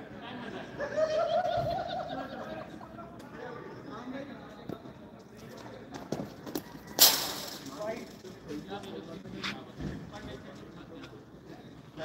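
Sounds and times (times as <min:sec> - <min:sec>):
voices calling out: 0:00.2 - 0:05.0.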